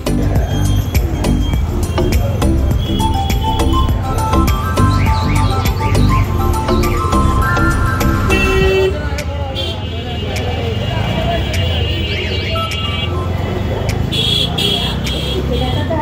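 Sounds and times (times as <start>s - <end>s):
auto-rickshaw engine rumble: 0.0s - 16.0s
horns tooting: 0.0s - 16.0s
street noise: 0.0s - 16.0s
voices: 0.0s - 16.0s.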